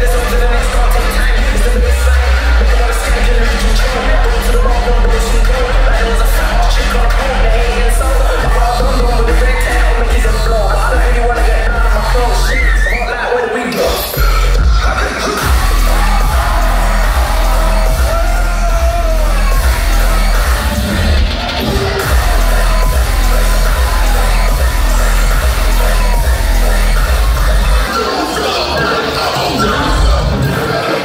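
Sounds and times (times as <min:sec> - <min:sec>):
crowd yelling: 0:00.0 - 0:31.0
loud dubstep with heavy sub-bass: 0:00.0 - 0:31.0.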